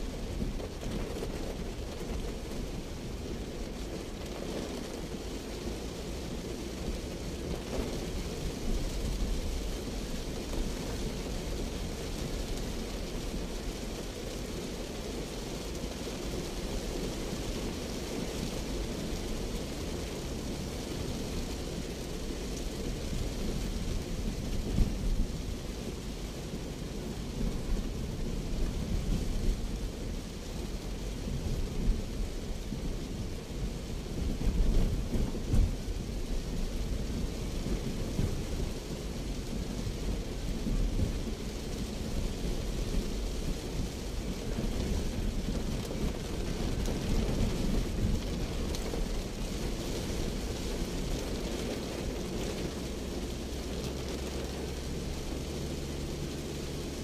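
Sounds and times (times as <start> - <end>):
heavy rain on car roof: 0.0 - 57.0.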